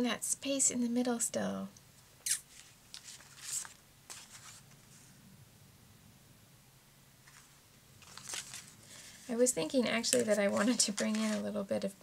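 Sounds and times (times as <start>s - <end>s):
paper rustling: 2.5s - 5.1s, 7.2s - 11.6s.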